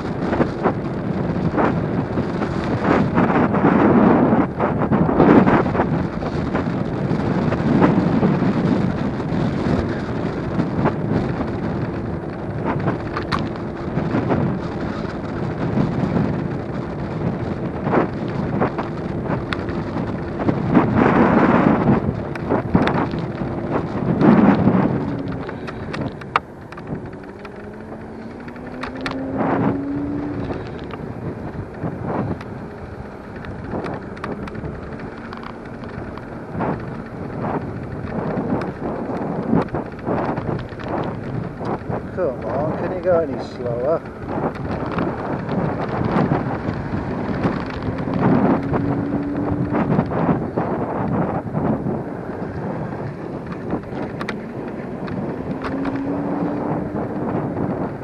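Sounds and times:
electric scooter running on tarmac: 0.0s - 58.0s
rattles and knocks over bumps: 0.0s - 58.0s
wind buffeting microphone: 0.0s - 58.0s.

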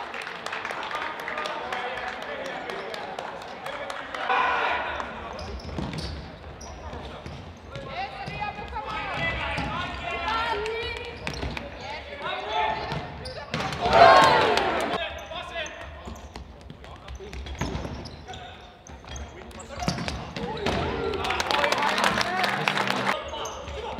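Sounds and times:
players calling out: 8.0s - 15.3s.

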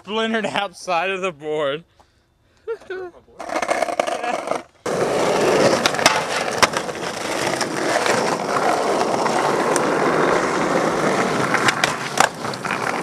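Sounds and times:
skateboard wheels rolling on asphalt: 3.4s - 13.0s.

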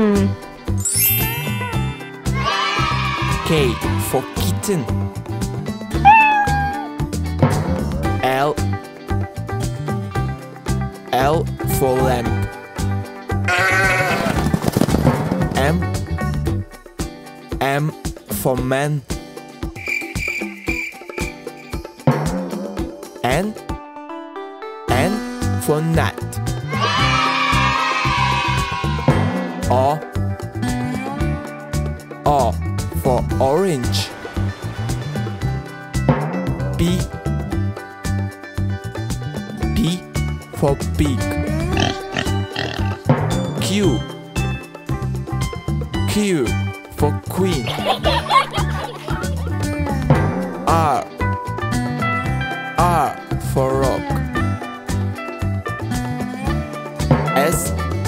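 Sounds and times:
backing music with bass line: 4.8s - 14.4s, 34.4s - 58.0s
cartoon pig oinking: 6.0s - 6.9s, 13.5s - 14.4s, 41.5s - 43.0s
sheep bleating: 6.0s - 6.9s, 13.5s - 14.4s.

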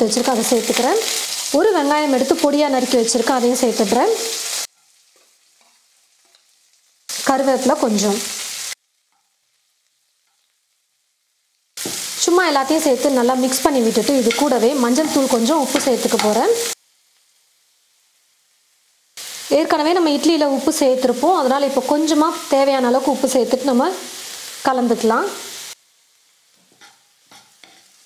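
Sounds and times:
food sizzling in oil: 0.0s - 28.0s
spatula scraping pan: 13.9s - 16.7s, 26.7s - 28.0s.

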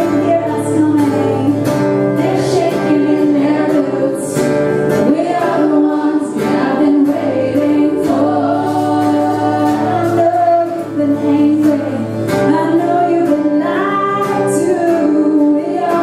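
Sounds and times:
strummed acoustic guitar: 0.0s - 16.0s
two women singing a duet: 0.0s - 16.0s.

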